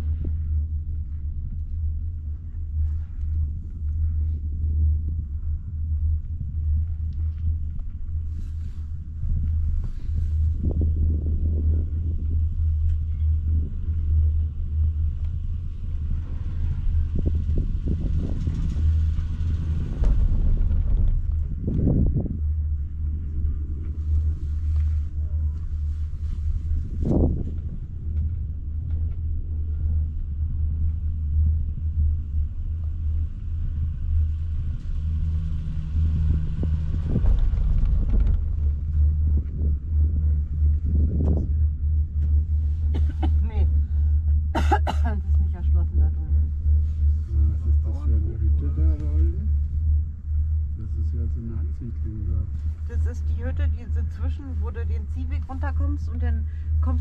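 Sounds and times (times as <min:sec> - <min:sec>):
chairlift rumble: 0:00.0 - 0:57.0.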